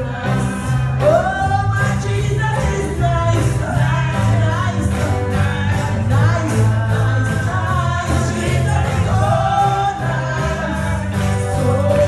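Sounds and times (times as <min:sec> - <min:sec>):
sustained bass notes: 0:00.0 - 0:12.0.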